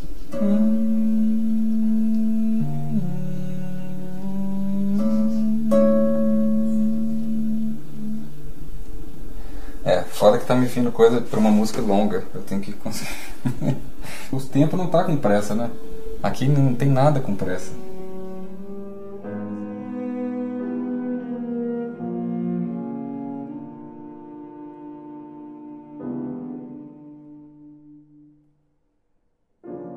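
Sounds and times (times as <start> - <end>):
nylon-string guitar chord ringing: 0.3 - 8.3, 14.9 - 22.8.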